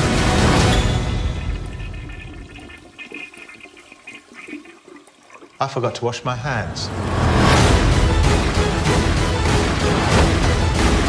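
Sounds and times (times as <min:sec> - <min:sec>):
rushing water-like noise: 0:00.0 - 0:11.0.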